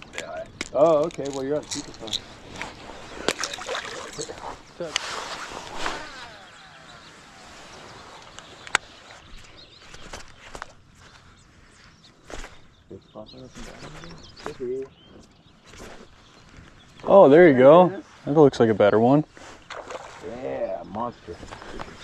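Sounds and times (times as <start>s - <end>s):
fishing reel spool whirring: 2.3s - 9.6s.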